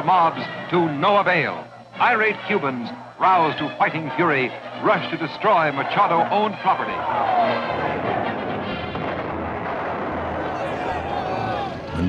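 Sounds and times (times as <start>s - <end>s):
rioting crowd rumbling din: 0.0s - 12.0s.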